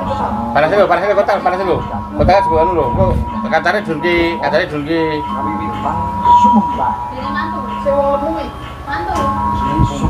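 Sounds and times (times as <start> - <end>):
music with long held notes: 0.0 - 10.0
voices: 0.0 - 10.0.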